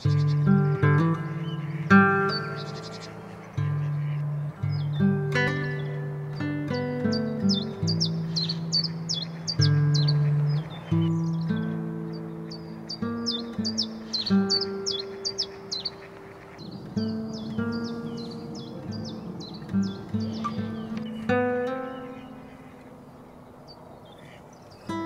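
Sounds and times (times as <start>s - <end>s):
plucked acoustic guitar music: 0.0s - 23.6s
songbird chirping: 0.0s - 25.0s.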